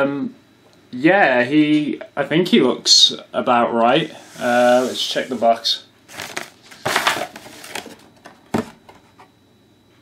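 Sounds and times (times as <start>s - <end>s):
cardboard box rustling: 4.3s - 8.9s.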